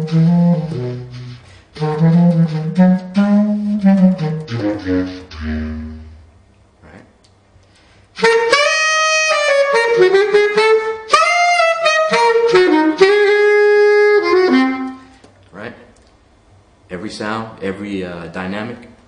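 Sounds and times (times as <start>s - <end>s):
bass clarinet playing: 0.0s - 6.4s, 8.2s - 15.2s.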